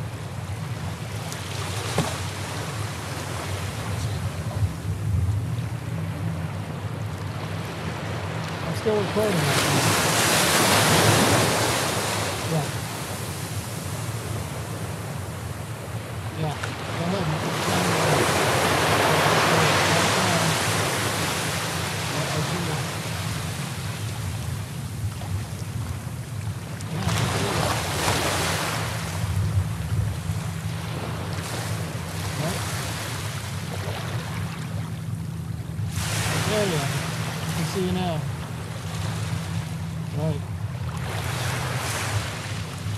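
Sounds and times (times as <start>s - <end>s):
ocean surf breaking on beach: 0.0s - 35.1s, 35.8s - 42.9s
wind buffeting microphone: 3.0s - 8.4s.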